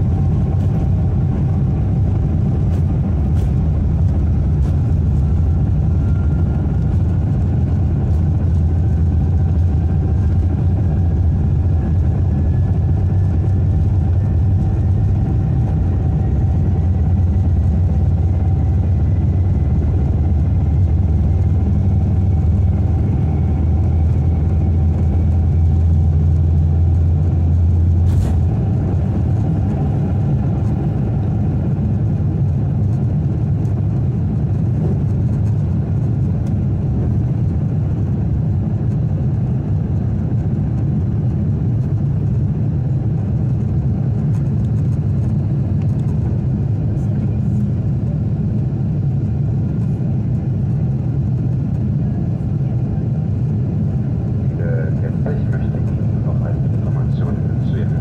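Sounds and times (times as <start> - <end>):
jet engine roar in cabin: 0.0 - 58.0
runway rumble: 0.0 - 58.0.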